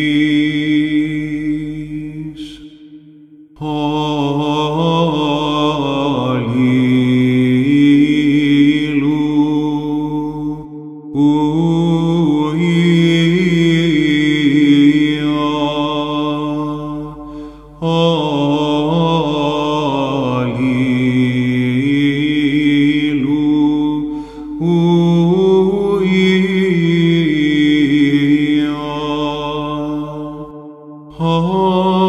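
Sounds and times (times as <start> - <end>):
man chanting: 0.0 - 3.0, 3.6 - 32.0
held low vocal drone: 0.0 - 32.0.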